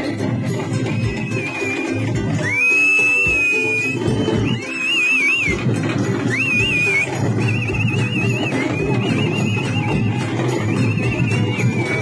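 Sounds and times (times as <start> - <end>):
festival drumming: 0.0 - 12.0
high wavering melody: 0.0 - 12.0.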